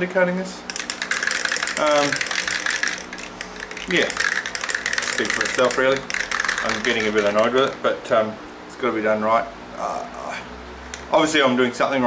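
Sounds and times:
spray can ball rattling: 0:00.7 - 0:07.9.

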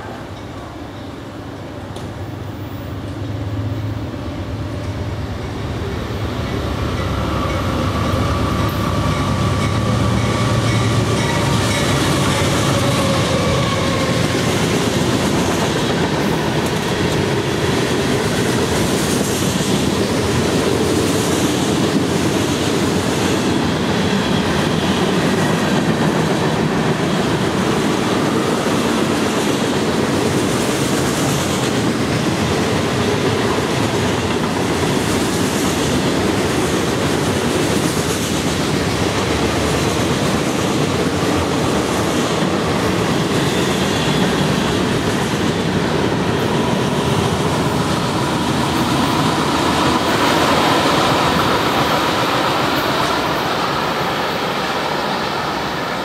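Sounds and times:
diesel locomotive engine rumble: 0:00.0 - 0:56.0
wheels clacking on rails: 0:04.7 - 0:56.0.

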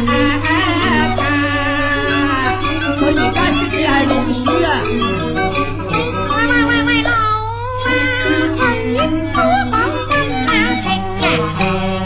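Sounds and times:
opera music with sliding melody: 0:00.0 - 0:12.0.

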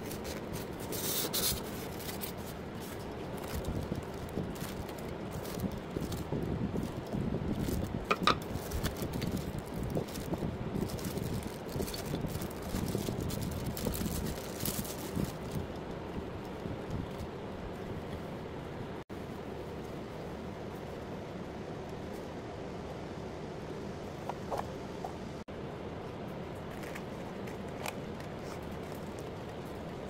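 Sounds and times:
plastic bag crinkling: 0:00.0 - 0:15.7
steady low background noise: 0:00.0 - 0:30.0.

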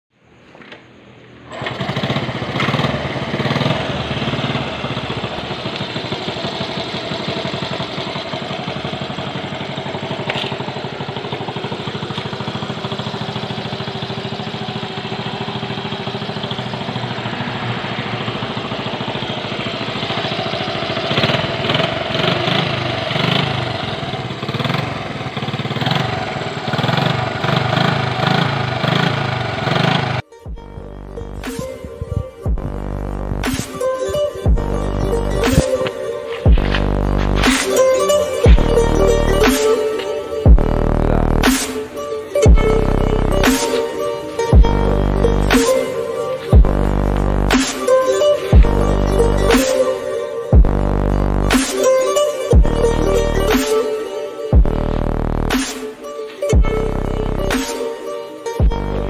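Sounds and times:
small motorbike engine revving: 0:01.5 - 0:55.8.

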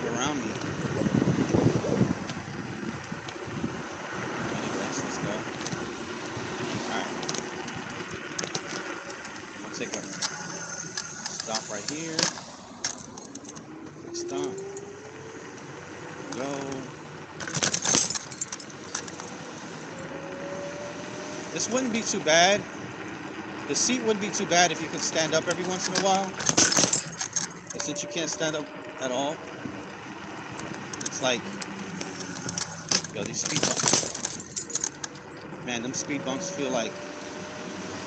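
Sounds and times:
wind and road noise: 0:00.0 - 0:38.0
thin whine rising in pitch: 0:13.6 - 0:16.3
scooter bumps and knocks: 0:17.4 - 0:19.3, 0:25.6 - 0:28.4, 0:30.7 - 0:35.2.

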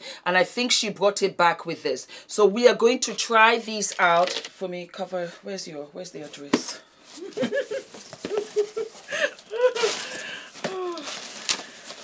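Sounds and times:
woman laughing: 0:07.2 - 0:10.2
cardboard box handling: 0:09.8 - 0:12.0.

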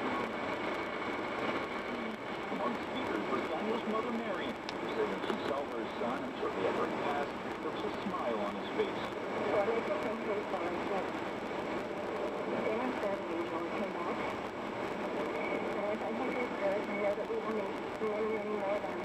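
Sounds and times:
reporter talking over radio: 0:00.0 - 0:00.6, 0:01.8 - 0:19.0.

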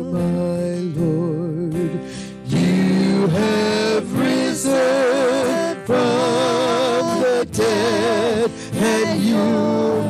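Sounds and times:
guitars and keyboard: 0:00.0 - 0:10.0
person singing with vibrato: 0:00.0 - 0:10.0.

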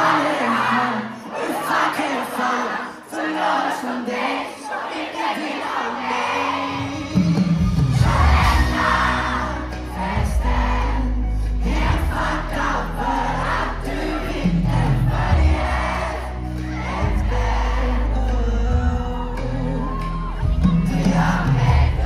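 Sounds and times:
crowd singing and screaming: 0:00.0 - 0:22.0
live pop band: 0:04.8 - 0:22.0.

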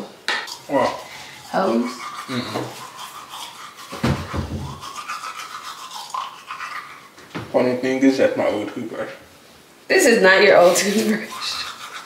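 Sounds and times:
toothbrush bristles rubbing hair: 0:00.5 - 0:07.1, 0:10.6 - 0:12.0.

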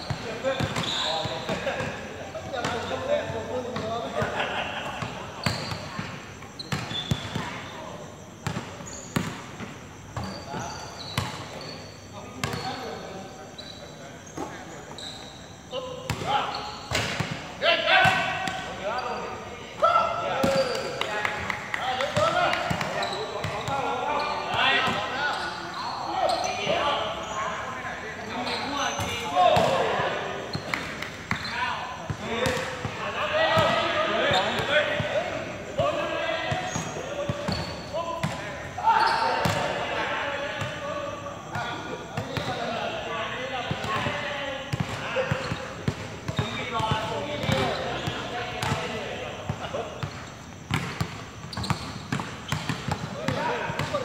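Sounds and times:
players' voices: 0:00.0 - 0:54.0
basketball bouncing on hard court: 0:44.7 - 0:48.8, 0:50.0 - 0:54.0.

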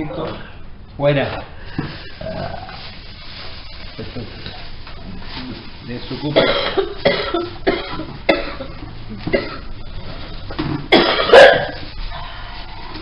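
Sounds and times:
woman coughing harshly: 0:06.4 - 0:09.7, 0:10.9 - 0:11.8.

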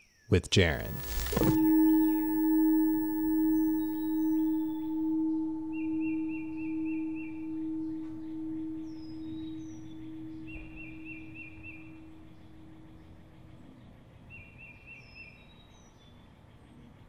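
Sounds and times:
singing bowl ringing: 0:00.8 - 0:14.0.

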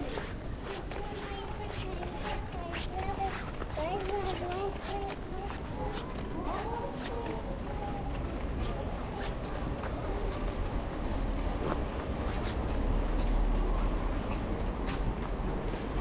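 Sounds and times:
people talking: 0:00.0 - 0:10.8
footsteps on pavement: 0:00.0 - 0:16.0.

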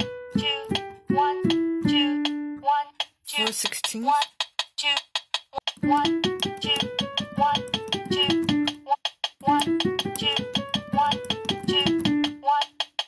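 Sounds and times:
piano playing a scale: 0:00.0 - 0:02.8, 0:05.8 - 0:08.8, 0:09.4 - 0:12.5
metronome ticking: 0:00.0 - 0:13.0.

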